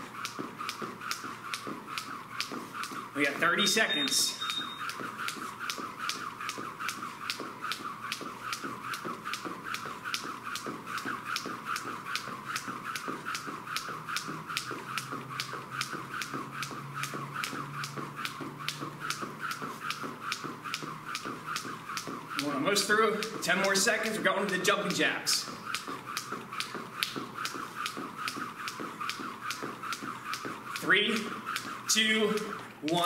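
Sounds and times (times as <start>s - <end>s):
jump rope tapping the floor: 0.0s - 33.0s.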